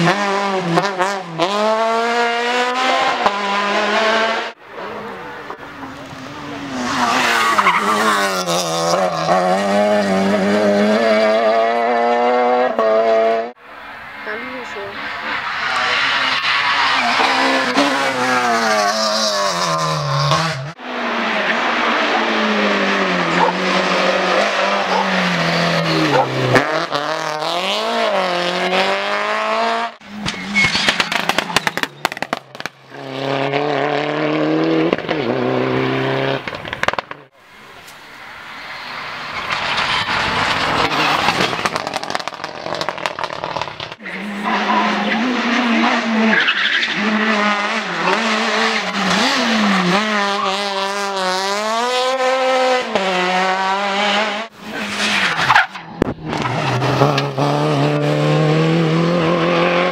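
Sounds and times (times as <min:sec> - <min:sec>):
rally car engines revving past: 0:00.0 - 0:14.0, 0:14.9 - 0:37.3, 0:38.5 - 0:59.9.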